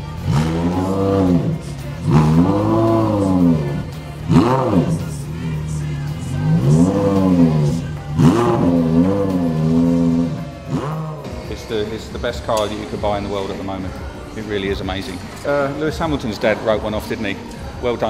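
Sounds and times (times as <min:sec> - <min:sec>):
car engine idling and revving: 0:00.0 - 0:18.0.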